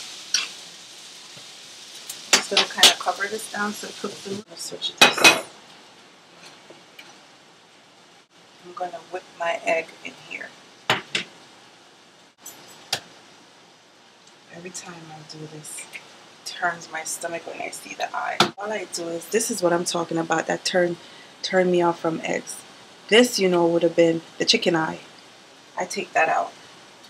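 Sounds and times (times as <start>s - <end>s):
garlic and onion sizzling in oil: 0.0s - 27.0s.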